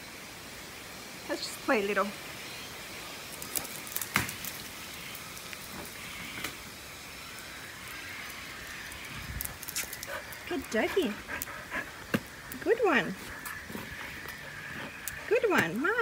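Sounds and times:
rain on brick paving: 0:00.0 - 0:16.0.

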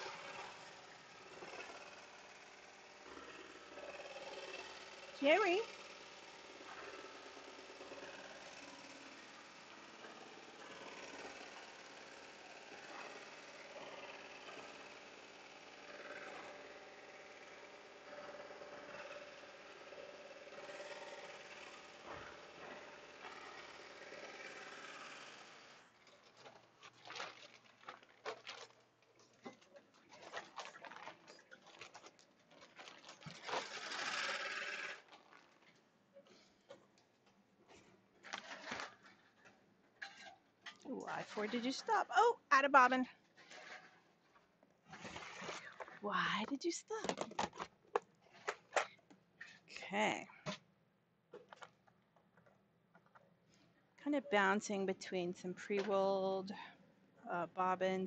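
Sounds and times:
embroidery machine stitching: 0:00.0 - 0:25.8, 0:33.2 - 0:35.2.

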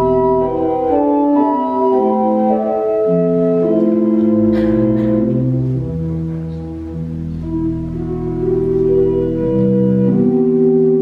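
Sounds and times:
organ playing sustained chords: 0:00.0 - 0:11.0.

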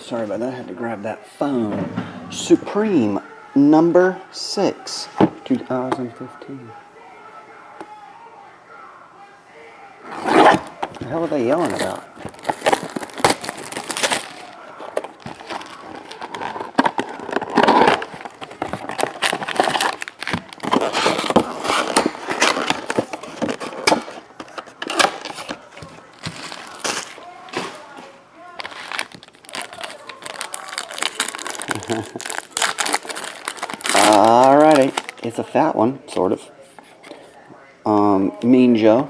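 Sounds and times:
plastic shrink wrap crinkling: 0:10.1 - 0:35.5.

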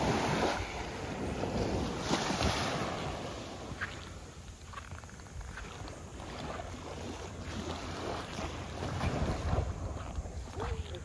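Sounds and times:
small waves lapping on beach: 0:00.0 - 0:11.0
wind rumbling on microphone: 0:00.0 - 0:11.0.

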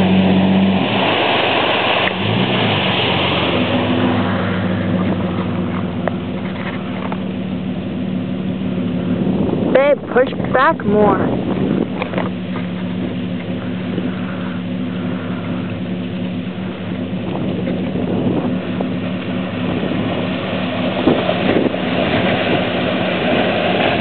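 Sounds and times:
car engine running: 0:00.0 - 0:24.0
water splashing: 0:00.0 - 0:24.0.

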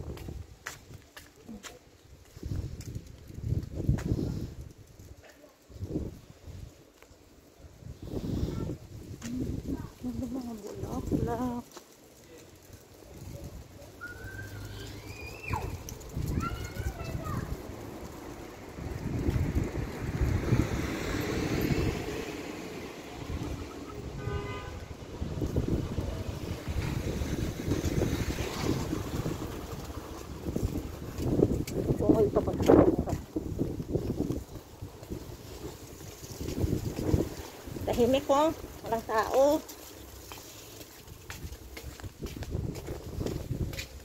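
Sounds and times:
wind rumbling on microphone: 0:00.0 - 0:11.8, 0:12.6 - 0:44.0.

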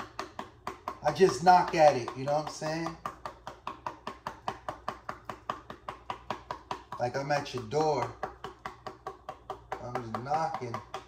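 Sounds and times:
pepper container tapping on hand: 0:00.0 - 0:11.0.

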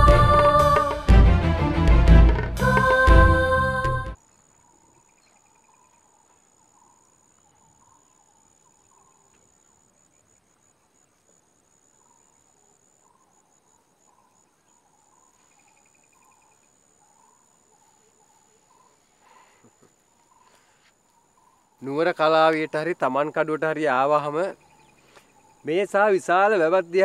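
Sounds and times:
music ending: 0:00.0 - 0:04.2
insect trilling: 0:04.2 - 0:27.0.

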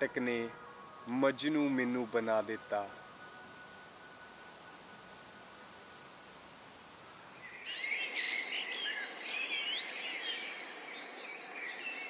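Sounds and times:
songbirds chirping and singing: 0:00.0 - 0:06.5, 0:07.1 - 0:12.0
faint hiss: 0:00.0 - 0:12.0.

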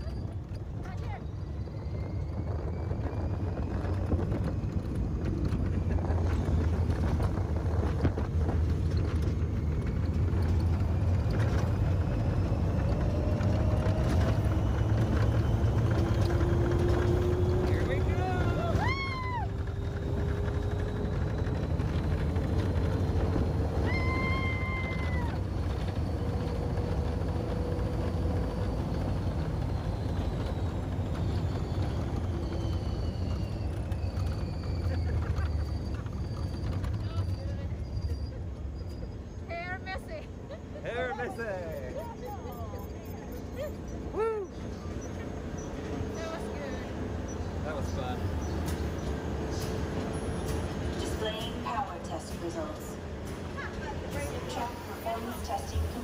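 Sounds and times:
low track rumble: 0:00.0 - 0:56.0.

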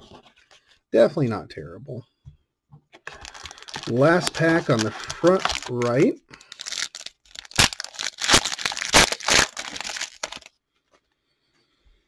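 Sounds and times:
foil wrapper tearing and crinkling: 0:03.1 - 0:10.5.

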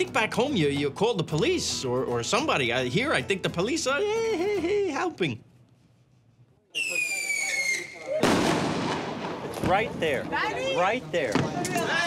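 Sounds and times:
whistling firework rocket: 0:06.8 - 0:08.9
firework bang: 0:08.2 - 0:10.3.

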